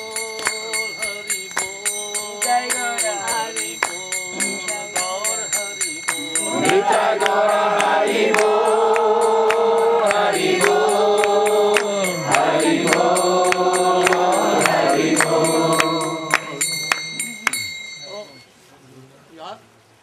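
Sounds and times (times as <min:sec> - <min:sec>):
devotional chanting: 0:00.0 - 0:18.5
hand cymbals striking: 0:00.0 - 0:18.5.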